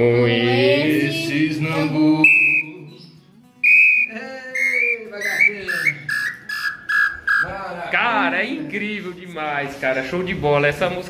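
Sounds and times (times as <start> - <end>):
hunting call whistle: 2.2 - 2.8, 3.6 - 7.6.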